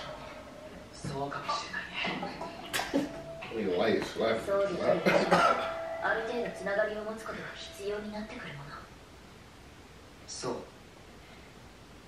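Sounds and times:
person coughing: 0:05.0 - 0:05.7.

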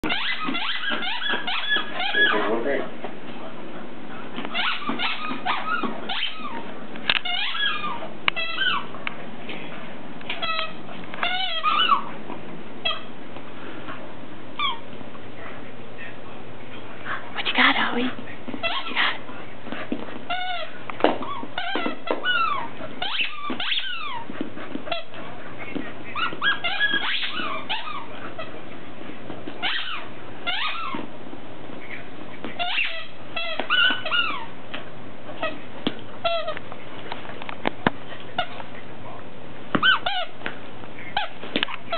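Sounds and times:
squeaky dog toy squeaks: 0:00.0 - 0:02.5, 0:04.5 - 0:06.6, 0:07.2 - 0:08.9, 0:10.3 - 0:12.1, 0:12.8 - 0:13.1, 0:18.6 - 0:19.0, 0:20.3 - 0:24.2, 0:26.2 - 0:28.5, 0:29.6 - 0:31.0, 0:32.6 - 0:34.5, 0:36.2 - 0:36.6, 0:39.8 - 0:40.4.

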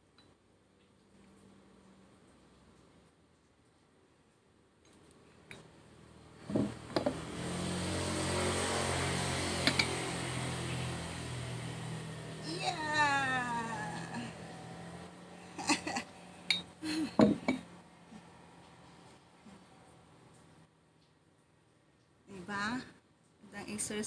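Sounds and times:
dumbbells knocking on wooden bench: 0:06.5 - 0:07.2, 0:17.2 - 0:17.6
drawn-out falling cry: 0:12.0 - 0:16.0.

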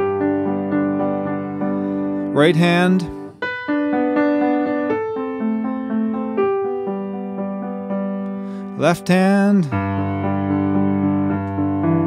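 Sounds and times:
piano broken chord notes: 0:00.0 - 0:12.0.

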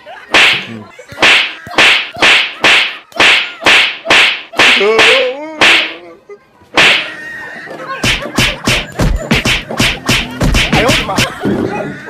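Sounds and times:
loud slapping blows: 0:00.3 - 0:06.0, 0:06.8 - 0:07.1, 0:08.0 - 0:11.4.

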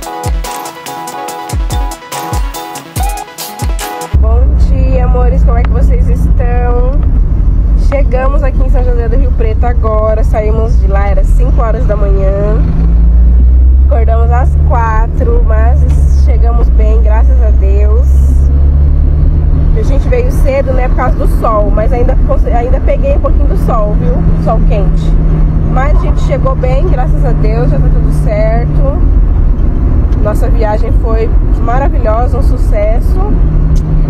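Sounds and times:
electronic music with drum beat: 0:00.0 - 0:04.2
car cabin rumble: 0:04.1 - 0:34.0
woman speaking: 0:04.2 - 0:07.0, 0:07.8 - 0:12.7, 0:13.9 - 0:18.5, 0:19.8 - 0:29.1, 0:30.2 - 0:33.4.

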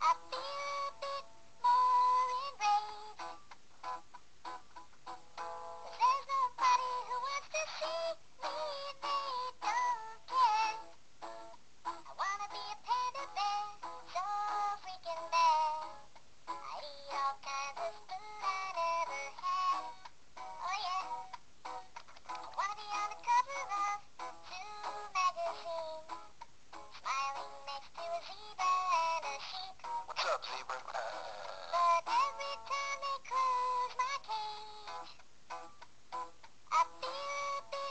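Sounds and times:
high-pitched singing voice: 0:00.0 - 0:03.2, 0:05.9 - 0:10.9, 0:12.1 - 0:16.0, 0:16.6 - 0:21.2, 0:22.2 - 0:26.2, 0:27.0 - 0:35.2, 0:36.7 - 0:37.9
high-pitched voice singing: 0:27.0 - 0:35.1.

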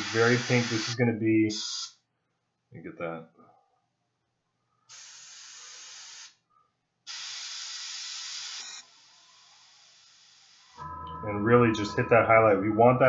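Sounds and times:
airbrush spraying paint: 0:00.0 - 0:02.0, 0:04.9 - 0:06.4, 0:07.1 - 0:10.8
faint hiss of air: 0:00.0 - 0:02.0, 0:04.9 - 0:06.4, 0:07.1 - 0:10.8.

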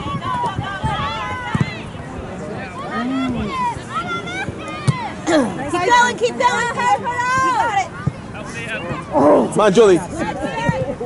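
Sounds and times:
young voices shouting: 0:02.5 - 0:10.9.

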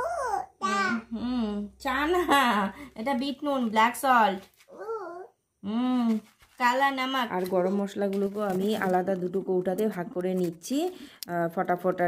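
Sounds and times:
toddler babbling: 0:00.0 - 0:01.1, 0:04.7 - 0:05.4.

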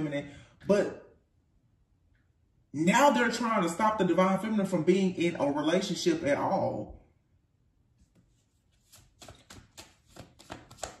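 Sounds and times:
cards being shuffled: 0:08.0 - 0:11.0.

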